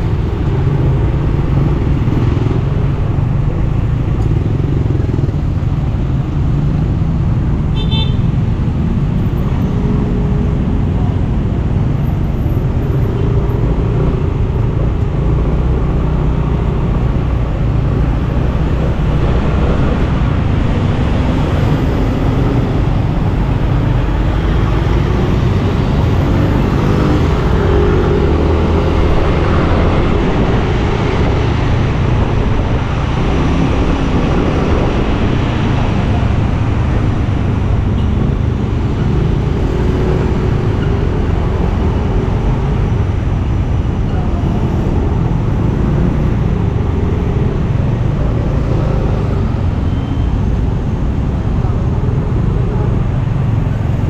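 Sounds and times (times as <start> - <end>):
surrounding traffic noise: 0.0 - 54.0.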